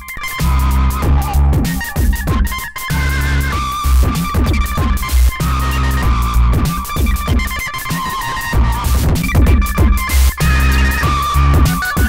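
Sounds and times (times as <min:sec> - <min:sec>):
distorted kick drums: 0:00.0 - 0:12.0
high synth tone: 0:01.1 - 0:12.0.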